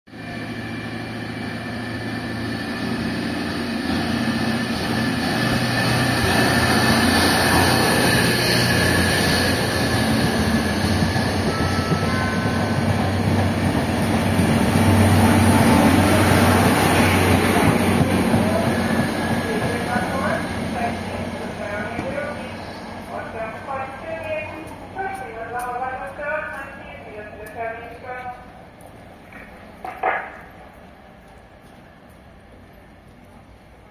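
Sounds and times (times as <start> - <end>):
train carriages rolling past: 0.1 - 33.9
train engine humming: 0.1 - 33.9.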